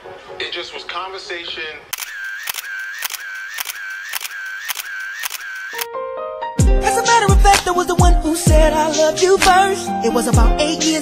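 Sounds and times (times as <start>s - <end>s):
sharp clicks: 1.9s - 5.9s.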